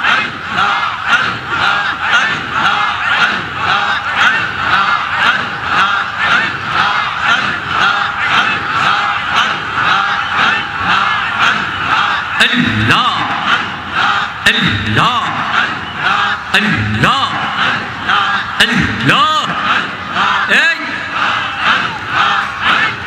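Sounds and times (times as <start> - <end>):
crowd of men chanting: 0.0 - 23.0.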